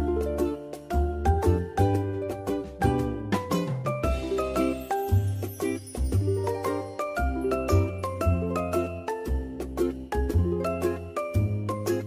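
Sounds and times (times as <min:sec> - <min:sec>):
regular beat: 0:00.1 - 0:12.0
chiming melody: 0:03.8 - 0:12.0.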